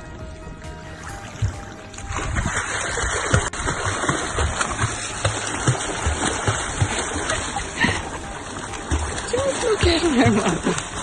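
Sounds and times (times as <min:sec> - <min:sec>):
rush of churned water: 0:00.0 - 0:11.0
water splashing from kicking legs: 0:00.0 - 0:11.0.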